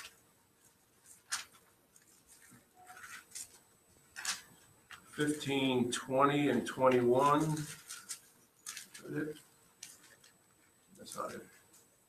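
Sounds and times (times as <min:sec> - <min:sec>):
pages being turned: 0:00.0 - 0:05.4, 0:06.8 - 0:10.4, 0:11.0 - 0:11.9.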